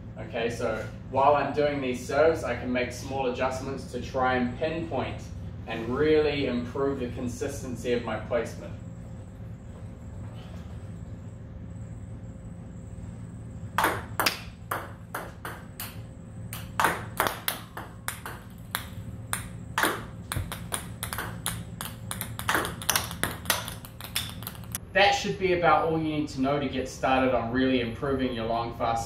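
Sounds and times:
low hum: 0.0 - 28.6
table tennis ball clicks: 16.6 - 24.8.

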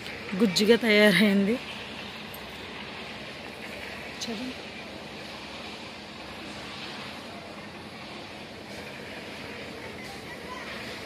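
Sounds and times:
engine drone: 0.0 - 11.0.

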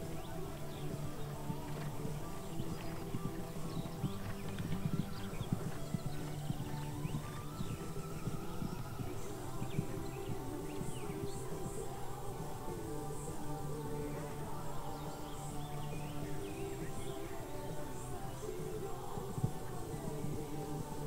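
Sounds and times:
background music: 0.0 - 21.0
horse hoofbeats on grass: 0.0 - 21.0.

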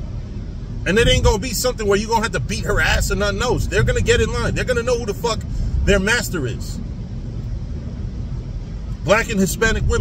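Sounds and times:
car cabin rumble and hiss: 0.0 - 10.0.

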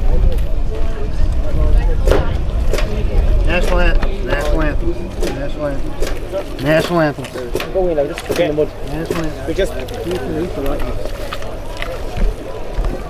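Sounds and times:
wind rumble on microphone: 0.0 - 5.2
people talking and calling out: 0.0 - 13.0.

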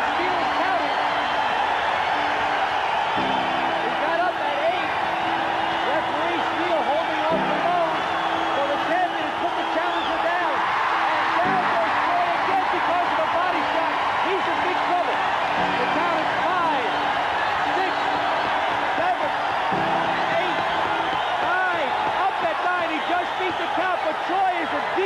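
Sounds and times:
crowd cheering and shouting: 0.0 - 25.0.

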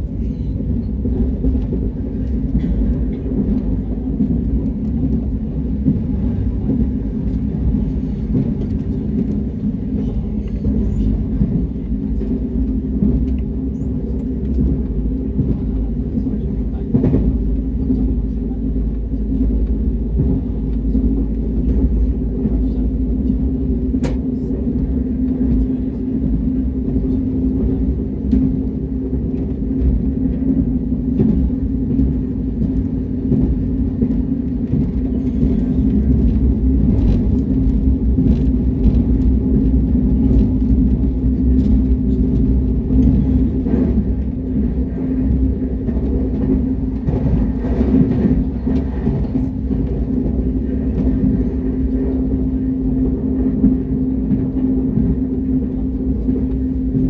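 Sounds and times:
constant low hum: 0.0 - 57.0
train cabin rumble: 0.0 - 57.0.

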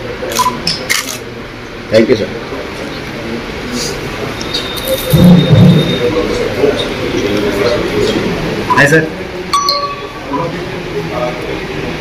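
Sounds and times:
low background voices: 0.0 - 12.0.

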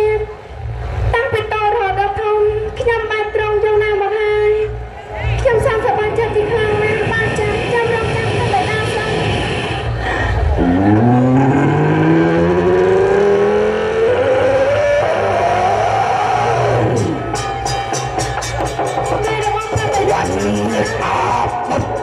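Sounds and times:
low instrumental note sliding upward: 9.3 - 22.0
instrumental accompaniment: 16.7 - 22.0.

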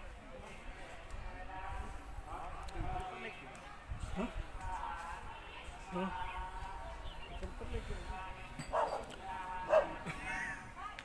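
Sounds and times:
dog barking: 8.7 - 9.1, 9.7 - 10.0.

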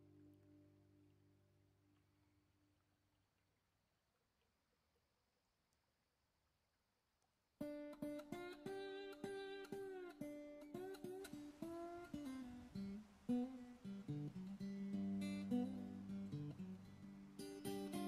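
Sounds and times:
acoustic guitar plucked and strummed: 7.6 - 18.0.

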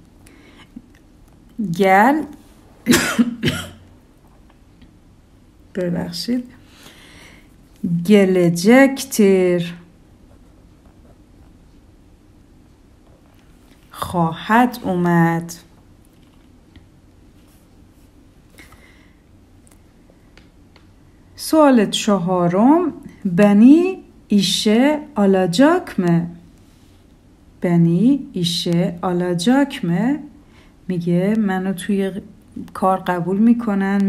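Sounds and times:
woman clearing her throat: 2.9 - 3.9.

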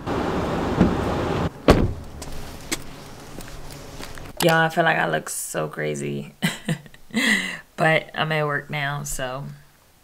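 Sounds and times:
car door shutting: 0.6 - 2.9
rustling noise: 0.7 - 4.4
faint footsteps on asphalt: 1.9 - 4.4.

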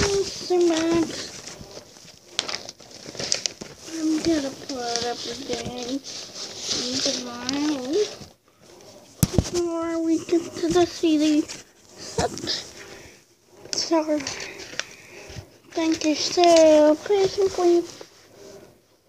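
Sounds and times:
high-pitched voice: 0.0 - 1.3, 9.5 - 12.7, 15.7 - 17.9.

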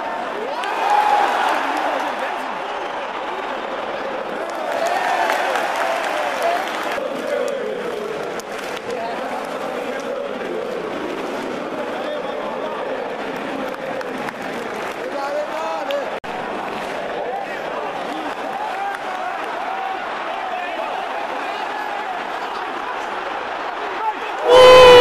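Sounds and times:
crowd chanting: 0.0 - 25.0
din of crowd voices: 0.0 - 25.0.

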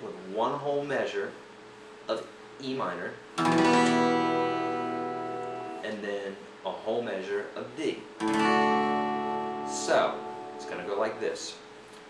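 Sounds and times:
acoustic guitar chord strummed: 3.4 - 6.0, 8.2 - 11.2.

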